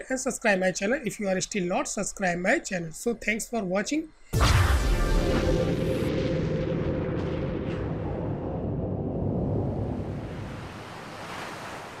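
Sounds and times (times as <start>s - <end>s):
deep rumble: 4.4s - 10.8s.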